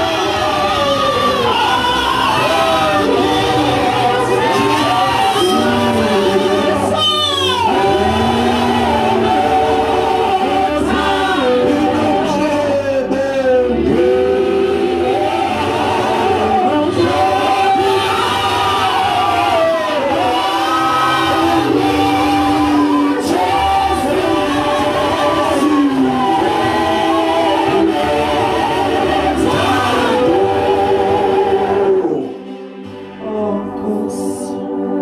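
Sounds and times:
group singing worship song: 0:00.0 - 0:35.0
lead voice on microphone: 0:00.0 - 0:35.0.

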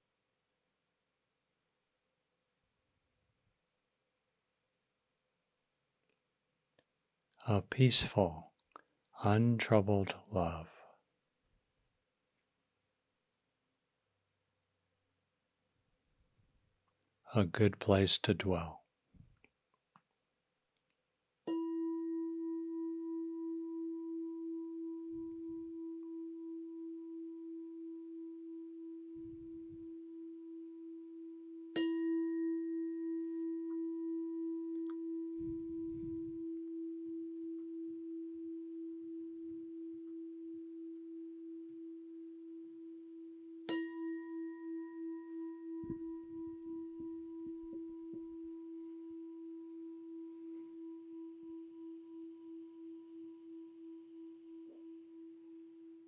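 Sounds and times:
meditation bell ringing: 0:21.5 - 0:56.0.

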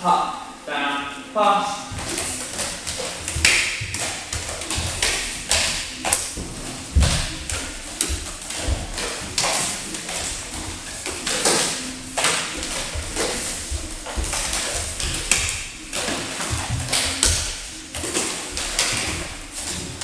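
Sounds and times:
juggling clubs knocking together: 0:01.9 - 0:20.0
juggling clubs slapping into hands: 0:01.9 - 0:20.0.

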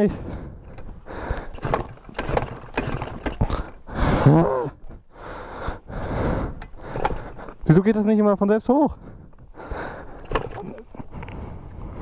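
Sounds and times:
small engine being cranked: 0:01.2 - 0:04.4.

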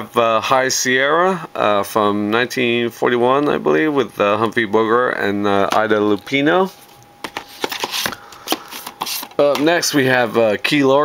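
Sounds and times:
plastic cases clicking and scraping: 0:07.2 - 0:09.8.

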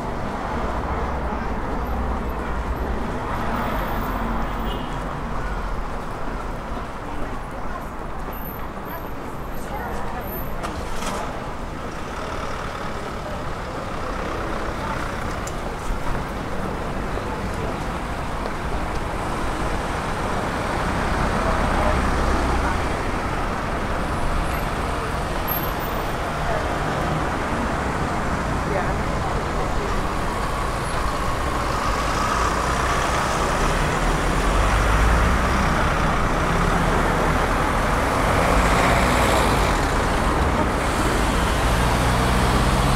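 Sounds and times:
cars driving past: 0:19.0 - 0:42.9.

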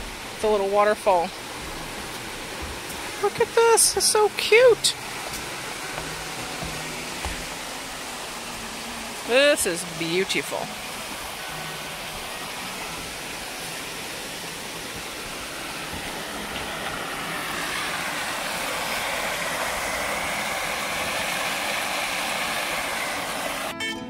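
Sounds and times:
waterfall running: 0:00.0 - 0:23.8
acoustic guitar music: 0:01.5 - 0:09.7, 0:10.3 - 0:15.0, 0:23.7 - 0:24.0.

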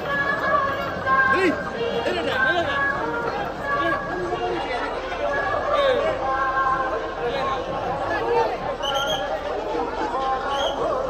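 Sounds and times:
crowd talking and calling: 0:00.0 - 0:11.0.

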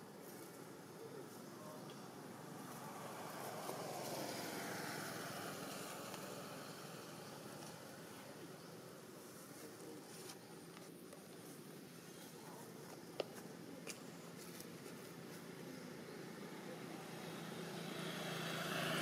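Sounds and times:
vehicle passing by: 0:02.4 - 0:08.0, 0:16.6 - 0:19.0.

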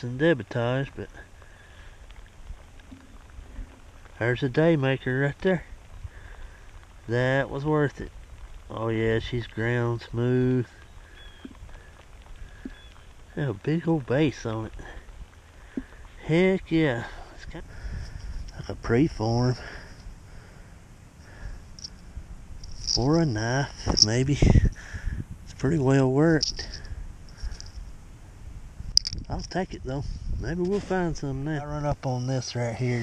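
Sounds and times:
faint high hiss: 0:00.0 - 0:33.0
wind rumble on microphone: 0:01.9 - 0:31.8.

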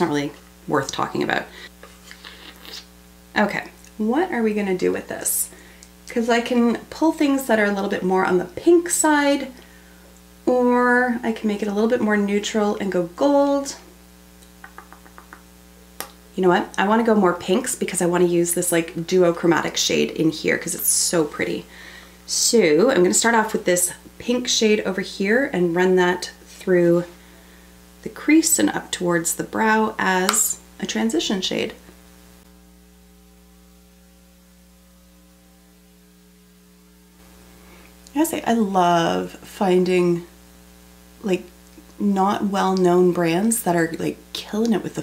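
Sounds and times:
faint hiss: 0:00.0 - 0:07.6, 0:35.9 - 0:44.8
low electrical hum: 0:00.0 - 0:45.0.

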